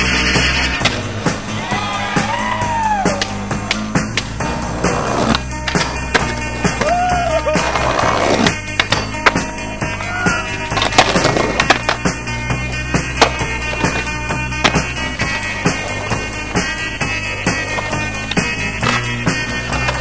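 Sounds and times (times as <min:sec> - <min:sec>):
rock music with guitar: 0:00.0 - 0:19.9
skateboard impacts: 0:00.0 - 0:20.0
skateboard wheels rolling on asphalt: 0:00.0 - 0:20.0.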